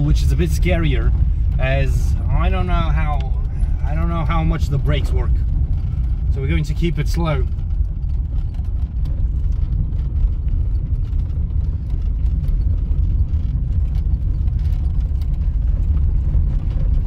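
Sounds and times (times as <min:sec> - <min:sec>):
car engine and tyres rumbling: 0:00.0 - 0:17.0
faint clicks and rattles: 0:00.0 - 0:17.0.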